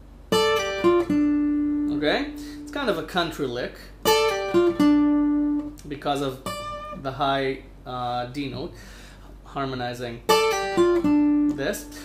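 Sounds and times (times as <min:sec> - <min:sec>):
acoustic guitar country lick: 0:00.3 - 0:03.0, 0:04.0 - 0:07.0, 0:10.3 - 0:12.0
acoustic guitar note ringing: 0:00.3 - 0:03.0, 0:04.0 - 0:05.8, 0:06.4 - 0:07.1, 0:10.3 - 0:12.0.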